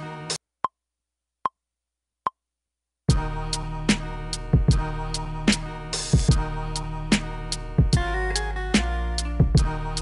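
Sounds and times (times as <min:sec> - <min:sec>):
hip hop beat: 0:03.1 - 0:10.0.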